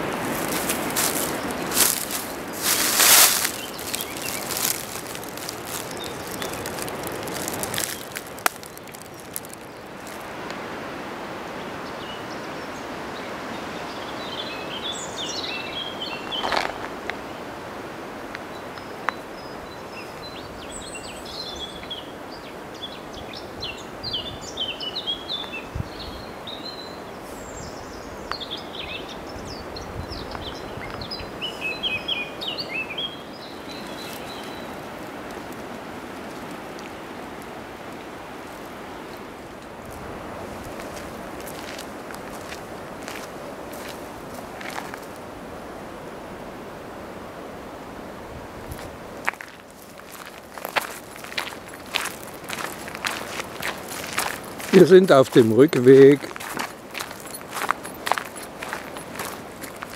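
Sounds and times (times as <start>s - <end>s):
footsteps on forest track: 0.0s - 10.3s, 16.3s - 17.0s, 33.5s - 45.2s, 48.7s - 59.9s
songbirds chirping: 0.0s - 45.3s, 48.7s - 59.9s
wind rushing through trees: 0.0s - 59.9s.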